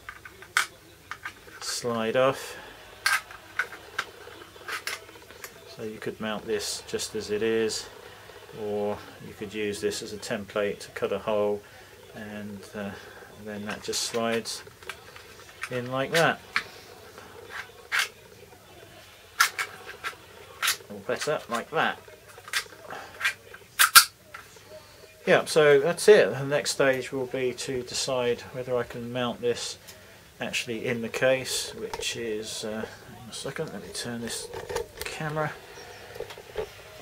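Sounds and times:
plastic clicks and clatter: 0.0 - 1.7, 3.0 - 5.7, 19.4 - 21.7, 22.3 - 24.5, 33.6 - 35.4
plastic clip clicks: 23.8 - 24.1.

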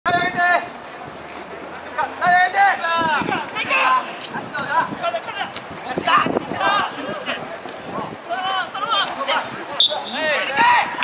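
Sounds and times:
players shouting and calling: 0.1 - 11.0.

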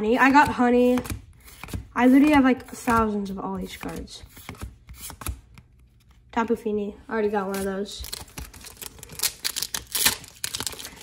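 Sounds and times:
cards clicking on wooden table: 0.4 - 5.8.

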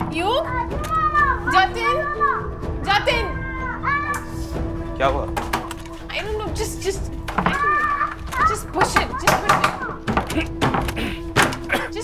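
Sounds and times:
child wailing: 0.5 - 4.3, 7.4 - 10.5.

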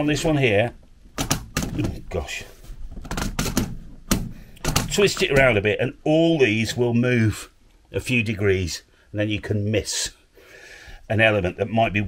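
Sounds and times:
clamp clicking and knocking: 1.2 - 2.0, 3.0 - 5.5.

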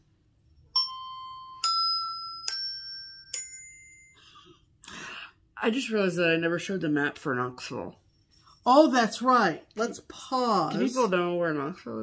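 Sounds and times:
glockenspiel notes: 0.6 - 4.4.

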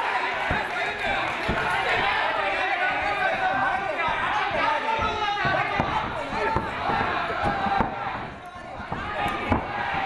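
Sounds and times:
crowd noise: 0.0 - 10.0
voices shouting: 0.0 - 10.0
punches and feet thudding: 0.2 - 10.0.

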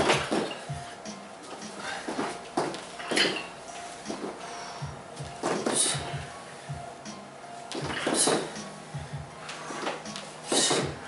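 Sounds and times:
background music: 0.0 - 11.0
metal weights clanking and rattling: 3.0 - 3.5.

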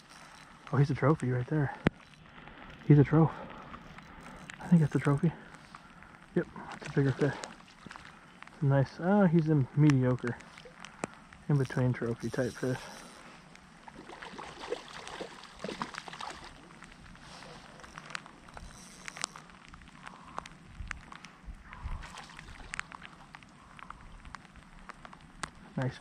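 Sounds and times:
faint steady hiss: 0.0 - 26.0
raindrops ticking: 0.0 - 26.0.

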